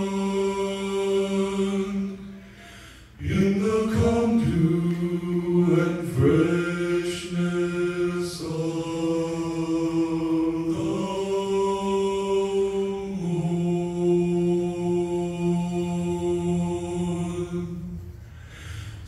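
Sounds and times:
male vocal quartet singing: 0:00.0 - 0:18.2.

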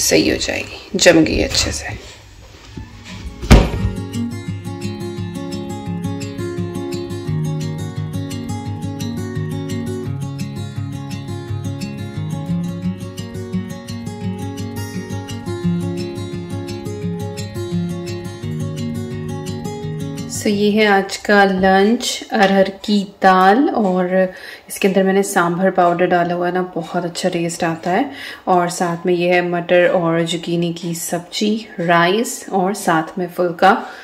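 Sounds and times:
plucked background music: 0:02.7 - 0:24.2
loud thump: 0:03.4 - 0:04.0.

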